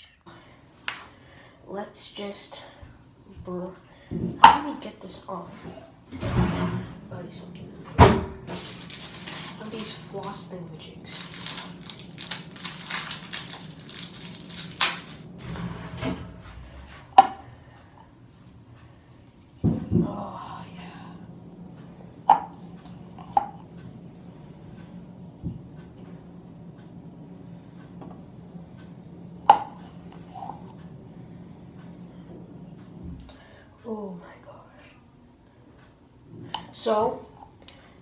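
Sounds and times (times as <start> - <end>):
steady low hum: 0.0 - 38.0
plastic packaging crinkling: 8.5 - 10.4, 11.0 - 15.4.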